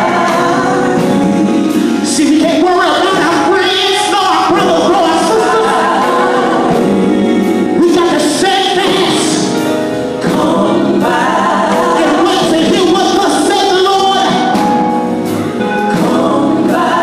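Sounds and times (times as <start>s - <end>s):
gospel group singing amplified: 0.0s - 17.0s.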